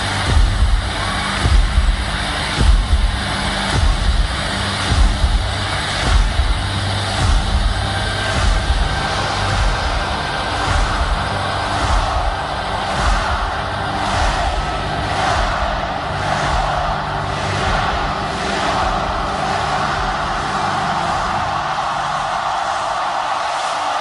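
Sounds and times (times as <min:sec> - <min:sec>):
deep low thumps over loudspeakers: 0:00.0 - 0:21.6
large crowd noise: 0:00.0 - 0:24.0.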